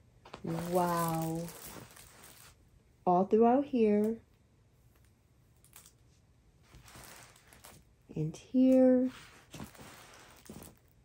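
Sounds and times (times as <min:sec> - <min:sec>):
plastic film rustling: 0:00.3 - 0:02.6, 0:06.6 - 0:07.9, 0:08.6 - 0:11.0.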